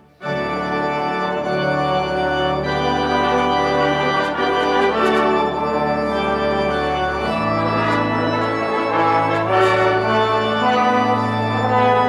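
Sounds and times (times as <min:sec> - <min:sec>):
brass ensemble sustained chords: 0:00.0 - 0:12.0
pipe organ chords: 0:00.0 - 0:12.0.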